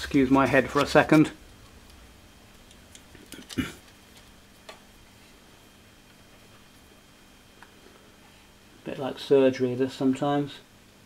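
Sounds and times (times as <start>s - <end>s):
faint steady hum: 0.0s - 11.0s
small ticks and clicks: 0.8s - 4.8s.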